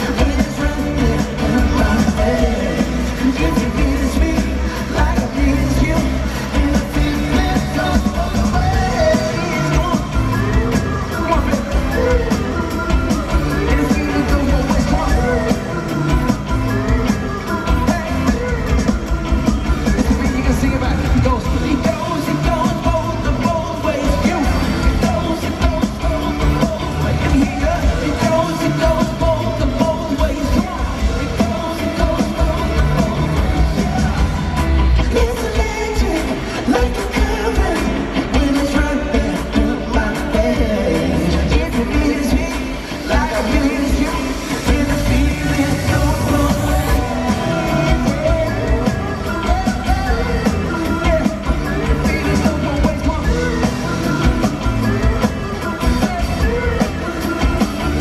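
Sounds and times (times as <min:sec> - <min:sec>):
drums: 0:00.0 - 0:58.0
man singing: 0:00.0 - 0:58.0
pop-rock band playing live: 0:00.0 - 0:58.0.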